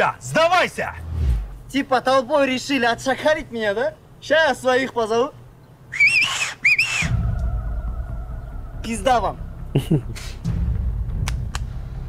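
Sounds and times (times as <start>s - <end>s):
low rumble: 0.8s - 1.8s, 7.1s - 12.0s
man whistling through fingers: 5.9s - 7.5s.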